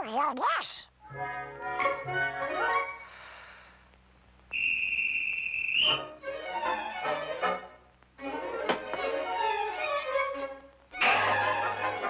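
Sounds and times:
hand-held whistle blast: 4.5s - 6.1s.

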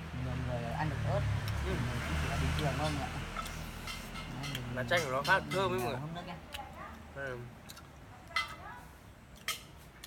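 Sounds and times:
mouth smacks chewing: 7.6s - 8.0s.

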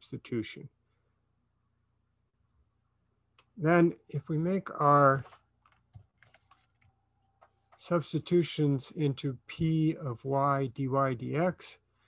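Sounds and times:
man speaking: 0.0s - 0.8s, 3.6s - 5.4s, 7.8s - 11.9s.

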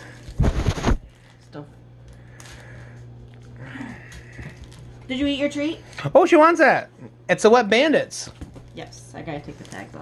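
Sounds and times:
steady low hum: 0.0s - 10.0s
rubbing and knocks on microphone: 0.4s - 1.0s.

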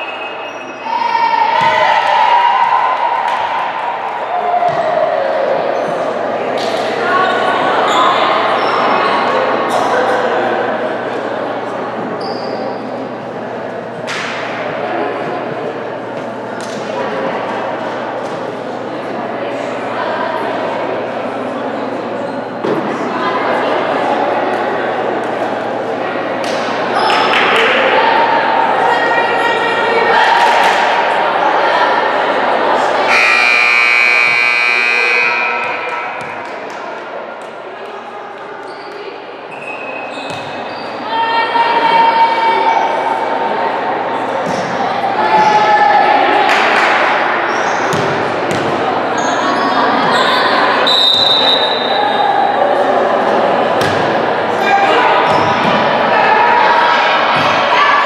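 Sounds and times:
players shouting and cheering: 0.0s - 20.9s, 22.3s - 37.6s, 40.1s - 58.0s
voices chattering with echo: 0.0s - 58.0s.

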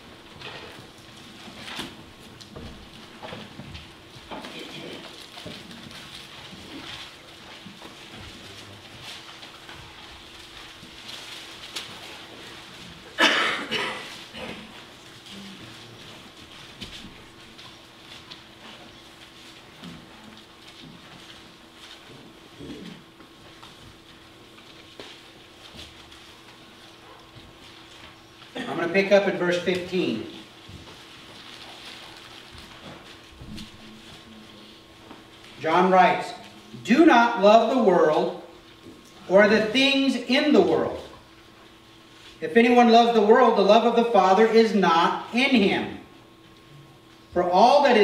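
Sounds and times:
faint clicks and rustles: 0.1s - 28.6s, 29.6s - 35.6s.

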